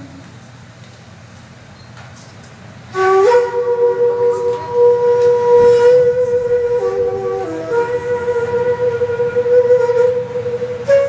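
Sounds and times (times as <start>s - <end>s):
bamboo flute sustained note: 2.9s - 11.0s.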